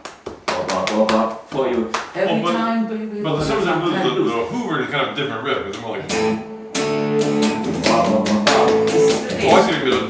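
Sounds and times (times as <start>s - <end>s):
man singing wordless syllables: 3.2s - 4.8s, 7.6s - 10.0s.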